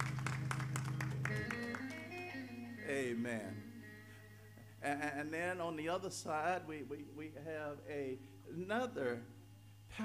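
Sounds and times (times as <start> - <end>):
hand clapping: 0.0 - 2.3
church music with held chords: 0.0 - 10.0.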